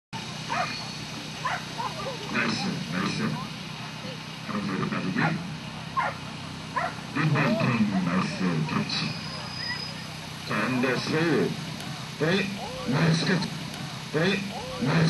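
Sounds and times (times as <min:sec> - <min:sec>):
people talking: 0:00.2 - 0:06.0, 0:06.8 - 0:15.0
dog barking: 0:00.4 - 0:02.2, 0:06.0 - 0:07.1.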